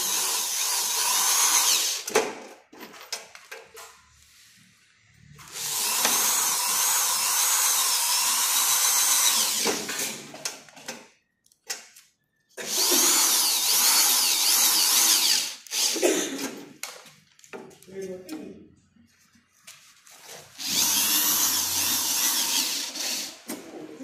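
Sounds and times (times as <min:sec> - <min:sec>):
drill-driver motor whine: 0:00.0 - 0:02.0, 0:05.4 - 0:09.9, 0:12.6 - 0:16.0, 0:20.6 - 0:23.4.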